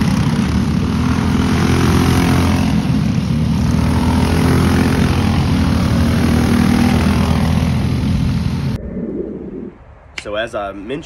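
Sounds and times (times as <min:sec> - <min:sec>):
go-kart engines racing: 0:00.0 - 0:08.8.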